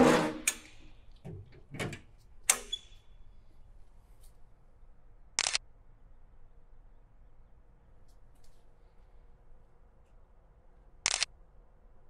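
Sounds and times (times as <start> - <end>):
camera shutter click: 5.4 - 5.6, 11.0 - 11.3.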